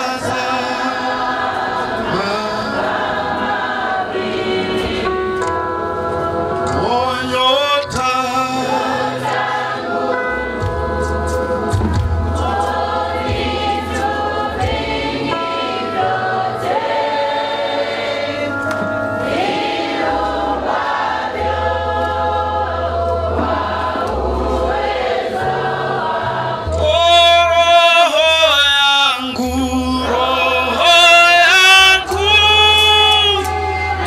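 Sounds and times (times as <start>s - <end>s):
man leading song on microphone: 0.0s - 1.2s, 2.0s - 3.0s, 6.7s - 9.2s, 26.7s - 33.6s
congregation singing a hymn: 0.0s - 34.0s
electric guitar: 4.5s - 16.5s, 18.4s - 24.9s
steady bass line: 8.8s - 17.4s, 18.4s - 28.6s, 29.3s - 34.0s.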